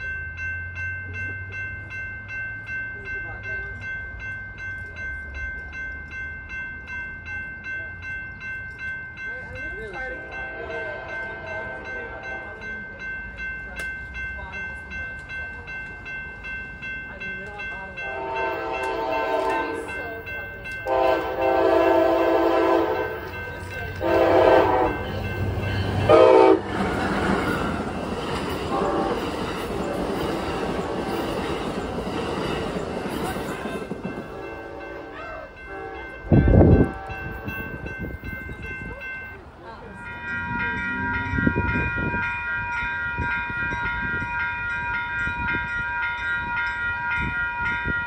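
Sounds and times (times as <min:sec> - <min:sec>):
railroad crossing bell ringing: 0:00.0 - 0:48.0
train rushing past: 0:09.6 - 0:45.7
train horn blasts: 0:10.4 - 0:12.6, 0:18.0 - 0:19.9, 0:20.8 - 0:27.0, 0:28.7 - 0:29.3, 0:34.3 - 0:37.6.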